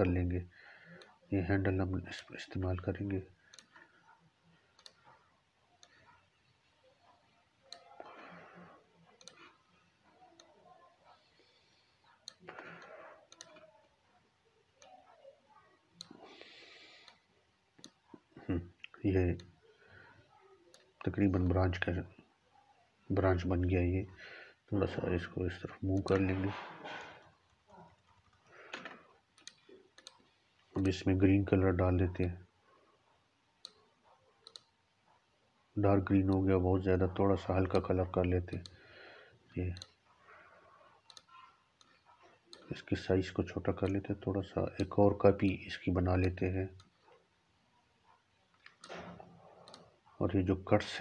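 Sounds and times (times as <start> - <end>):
faint room hiss: 0.0 - 51.0
computer mouse clicks: 3.5 - 3.9, 4.8 - 5.1, 9.2 - 9.5, 12.2 - 13.7, 26.0 - 31.0, 33.6 - 34.8, 38.5 - 38.8, 41.0 - 42.8, 44.8 - 45.0, 48.6 - 50.0
computer mouse click: 9.2 - 9.4, 13.3 - 13.6, 28.8 - 30.2, 34.4 - 34.7, 41.1 - 42.7, 48.6 - 49.9.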